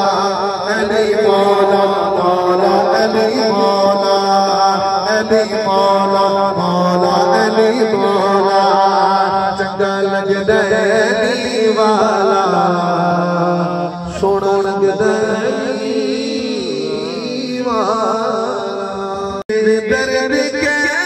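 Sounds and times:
man singing through public address: 0.0s - 21.0s.

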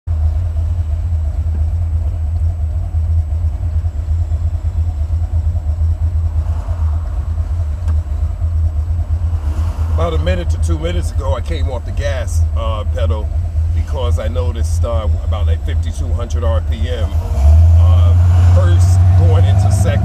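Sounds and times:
car engine idling: 0.1s - 20.0s.

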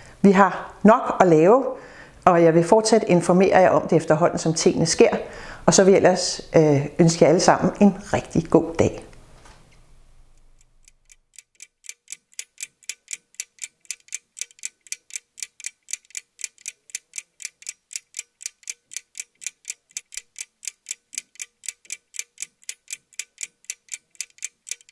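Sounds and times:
clock ticking: 10.4s - 24.9s.

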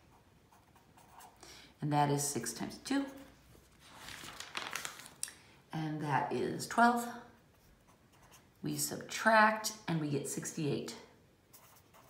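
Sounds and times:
marker scratching on paper: 0.0s - 1.4s, 11.5s - 12.0s.

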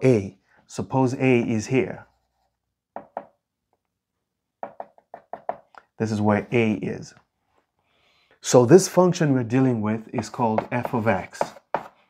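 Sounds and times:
chalk tapping on chalkboard: 3.0s - 3.4s, 4.6s - 5.7s, 10.2s - 12.0s.

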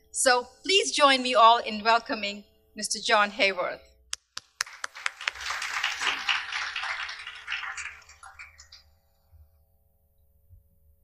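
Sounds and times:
audience applauding: 4.4s - 8.8s.

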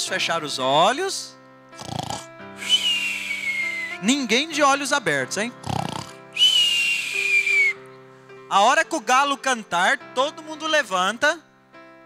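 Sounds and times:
whistled snore exhale: 1.8s - 4.0s, 5.6s - 7.7s.

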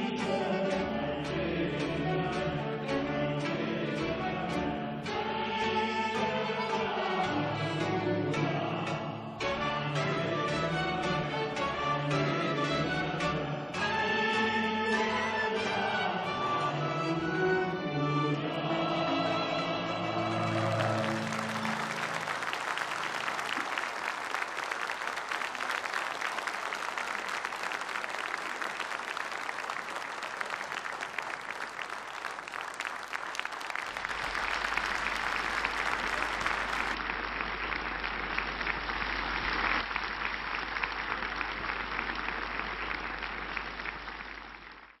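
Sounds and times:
audience applauding: 18.4s - 45.0s.

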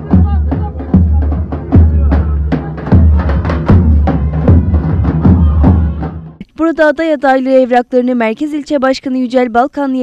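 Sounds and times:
crowd noise: 0.0s - 6.4s.

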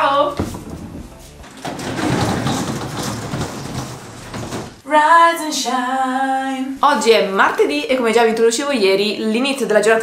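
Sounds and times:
roller shutter rattling up: 1.5s - 4.8s.

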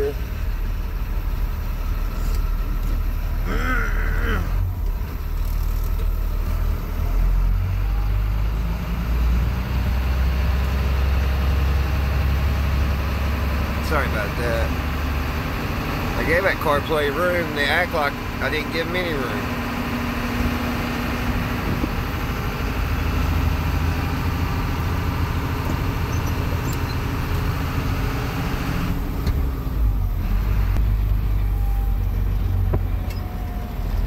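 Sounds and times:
truck engine rumble from inside cab: 0.0s - 34.0s.

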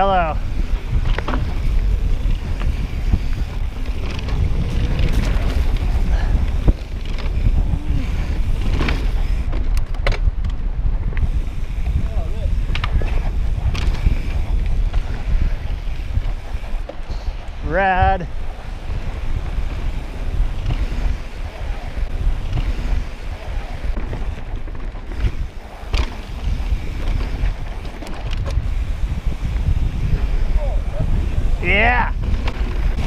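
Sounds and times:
wind buffeting microphone: 0.0s - 33.0s
bike clicks and knocks: 0.4s - 17.7s, 18.4s - 33.0s.

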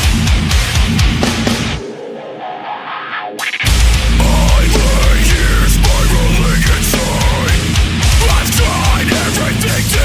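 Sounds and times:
distorted guitars: 0.0s - 10.0s
drums: 0.0s - 10.0s.

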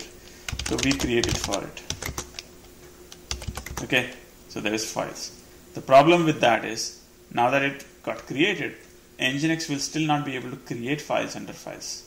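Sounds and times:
computer keyboard typing: 0.5s - 2.5s, 3.1s - 3.9s.

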